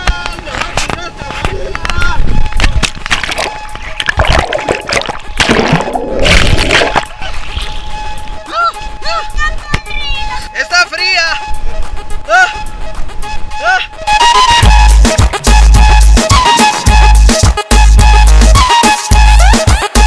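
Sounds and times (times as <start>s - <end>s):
background music: 2.5s - 20.0s
water splashing and bubbling: 2.7s - 7.9s.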